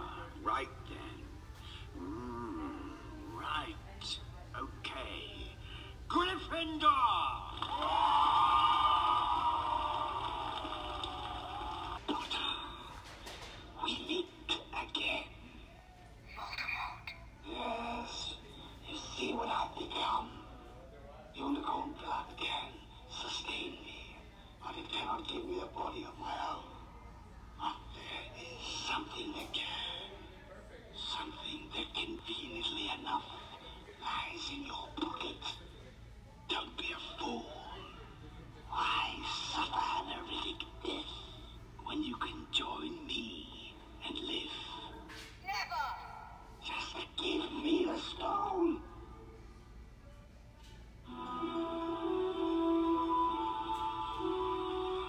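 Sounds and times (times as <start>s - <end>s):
whispery speech: 0.0s - 7.6s, 11.0s - 51.5s.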